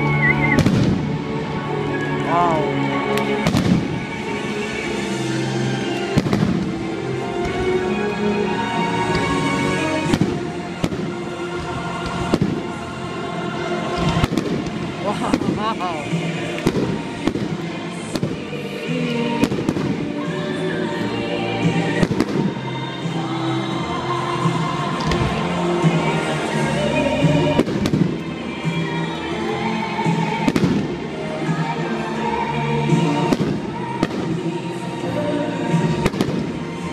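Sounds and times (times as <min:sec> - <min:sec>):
fireworks bursting with bangs: 0:00.4 - 0:01.6, 0:03.2 - 0:05.2, 0:05.9 - 0:23.1, 0:24.1 - 0:29.0, 0:30.0 - 0:31.7, 0:32.9 - 0:36.9
loud music with voice: 0:01.2 - 0:07.2, 0:08.2 - 0:36.9.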